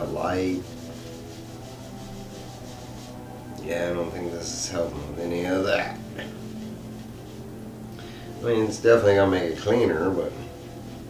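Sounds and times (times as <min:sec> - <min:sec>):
cloth rubbing glossy cover: 0:00.0 - 0:08.6, 0:09.4 - 0:11.0.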